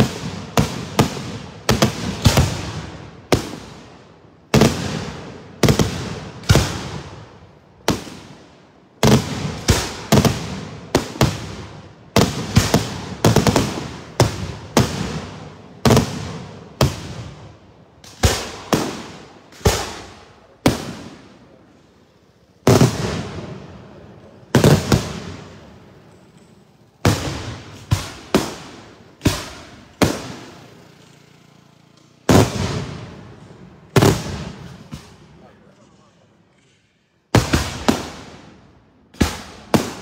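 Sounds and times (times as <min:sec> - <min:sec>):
firework bangs with echo: 0:00.0 - 0:21.8, 0:22.6 - 0:26.2, 0:26.9 - 0:30.9, 0:32.2 - 0:35.4, 0:37.3 - 0:40.0.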